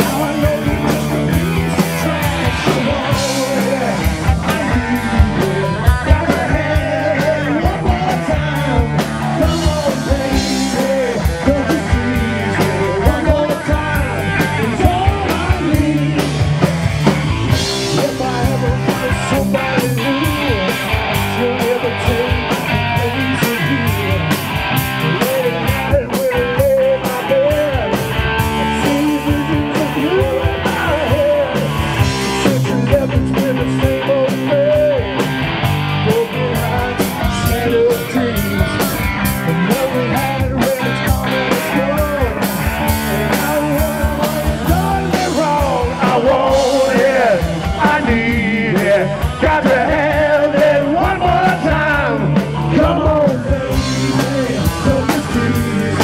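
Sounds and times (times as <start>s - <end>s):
live rock band playing: 0.0s - 56.0s.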